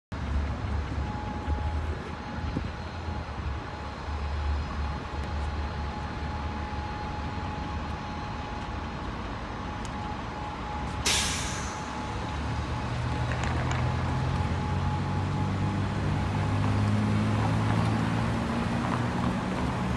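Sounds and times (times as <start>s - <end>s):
low rumble of traffic: 0.1s - 19.9s
vehicle engine: 0.1s - 19.9s
air brakes hissing: 11.0s - 12.1s.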